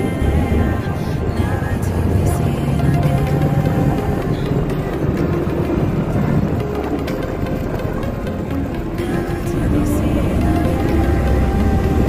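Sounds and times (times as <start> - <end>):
background music: 0.0 - 12.0
road vehicle running noise: 0.0 - 12.0.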